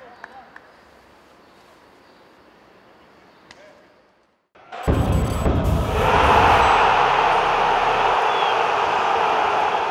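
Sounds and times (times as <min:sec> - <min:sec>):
faint open-air ambience: 0:00.0 - 0:04.6.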